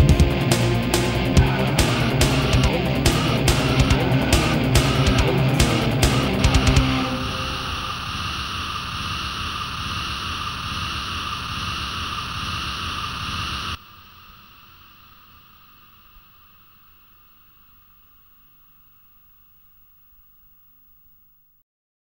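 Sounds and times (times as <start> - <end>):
hissing wall of noise: 0.0 - 18.0
faint hiss: 7.2 - 21.3.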